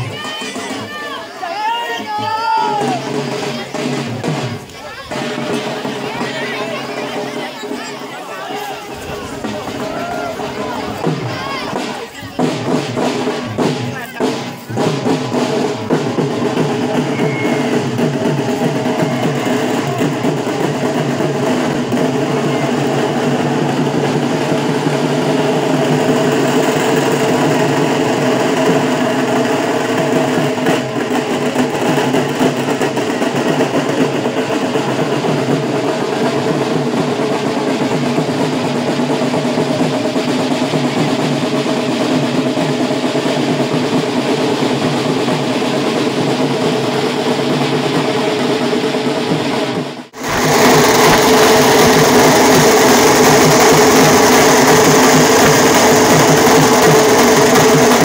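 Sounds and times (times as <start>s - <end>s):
procession music with drumming: 0.0s - 58.0s.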